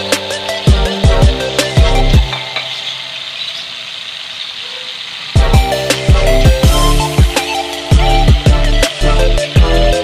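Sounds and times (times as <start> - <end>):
background music with steady beat: 0.0 - 3.3, 5.4 - 10.0
fish fillet sizzling in oil: 0.0 - 10.0.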